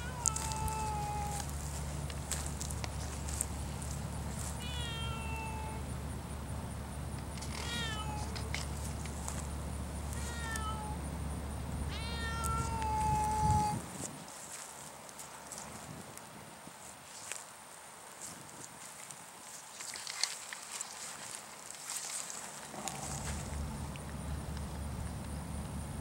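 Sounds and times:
cat meowing: 0:00.0 - 0:01.5, 0:04.4 - 0:05.8, 0:07.5 - 0:08.6, 0:10.1 - 0:11.0, 0:11.9 - 0:13.8
steady low rumble: 0:00.0 - 0:07.6, 0:08.2 - 0:14.2, 0:22.7 - 0:26.0.

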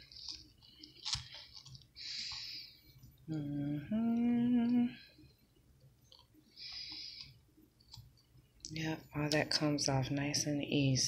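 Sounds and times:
moist tearing and rustling: 0:00.0 - 0:02.5.

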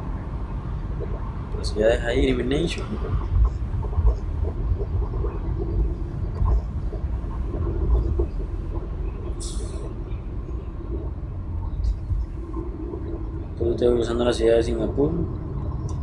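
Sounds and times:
car driving rumble: 0:00.0 - 0:16.0.

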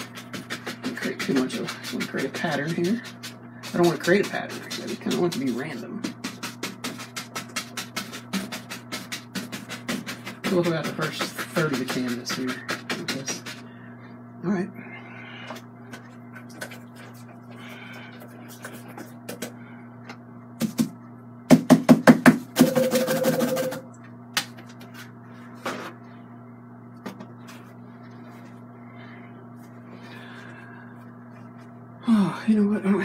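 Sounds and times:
brush scraping canvas: 0:00.0 - 0:13.7
steady low hum: 0:00.0 - 0:33.0.

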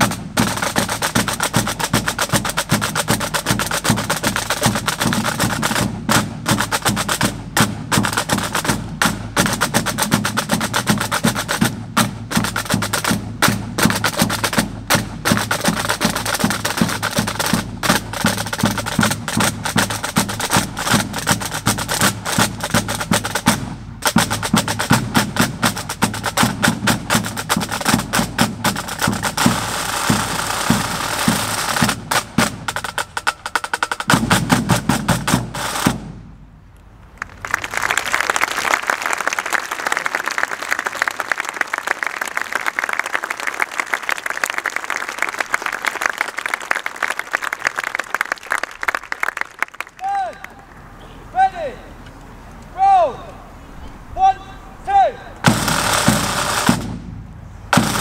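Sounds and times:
snare drums: 0:00.0 - 0:36.5, 0:55.4 - 0:58.0
tenor and bass drums beating: 0:00.0 - 0:36.6, 0:55.4 - 0:58.0.

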